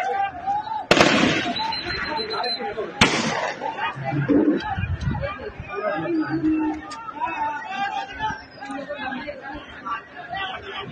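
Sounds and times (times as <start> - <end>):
people chattering: 0.0 - 10.9.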